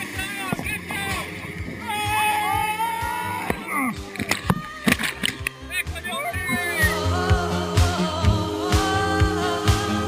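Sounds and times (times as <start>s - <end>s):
song with vocals: 0.0s - 10.0s.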